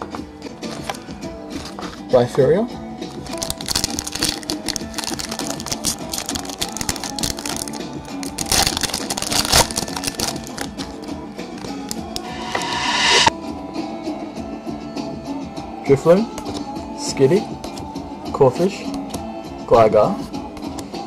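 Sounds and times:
background music: 0.0 - 13.4
foil wrapper crinkling and tearing: 3.3 - 10.9.

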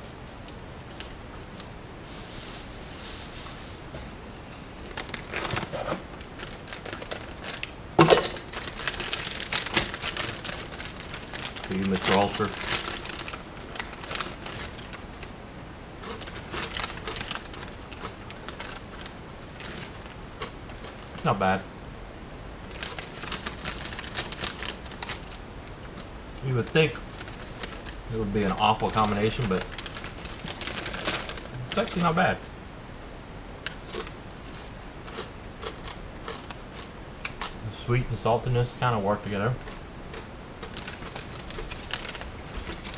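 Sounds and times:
plastic snack bag crinkling: 4.8 - 15.4, 16.0 - 21.6, 22.7 - 32.4, 33.7 - 37.6, 39.2 - 42.9
crunching of rinds: 4.8 - 21.3, 22.6 - 32.2, 33.6 - 37.6, 39.5 - 42.9
pork rinds crunching while chewed: 8.6 - 15.3, 16.0 - 21.2, 33.7 - 37.6.

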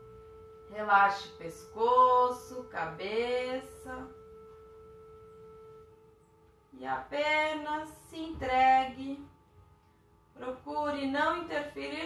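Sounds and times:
soft held musical tone: 0.0 - 12.0.

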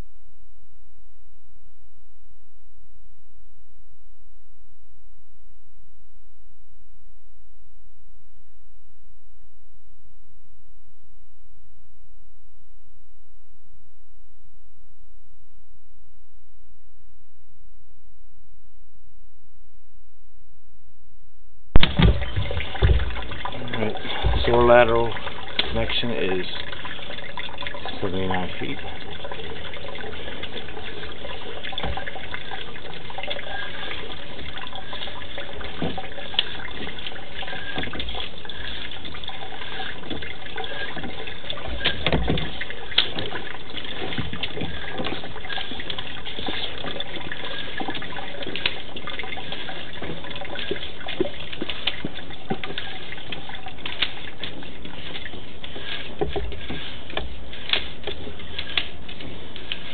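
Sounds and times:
water rushing in sewer pipe: 21.8 - 59.9.

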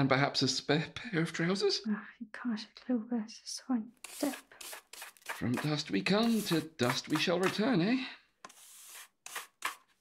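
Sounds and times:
broom sweeping: 4.0 - 7.6, 8.4 - 10.0.

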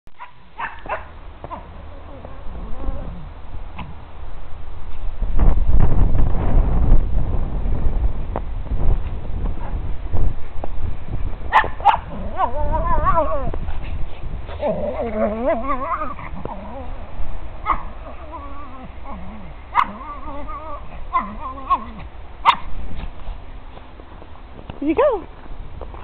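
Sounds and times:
dog barking and whining: 0.2 - 4.0, 11.5 - 13.8, 14.5 - 22.7
low microphone rumble: 1.2 - 26.0.

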